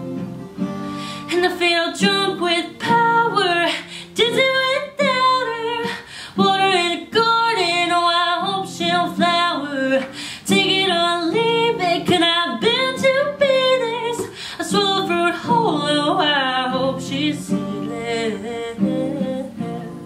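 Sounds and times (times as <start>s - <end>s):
strummed acoustic guitar: 0.0s - 20.0s
woman singing slow song: 0.9s - 20.0s.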